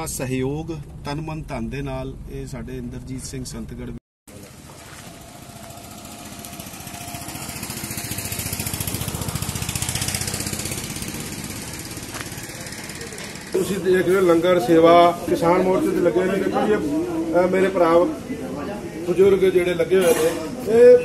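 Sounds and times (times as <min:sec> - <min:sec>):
small engine chugging: 0:05.2 - 0:13.6.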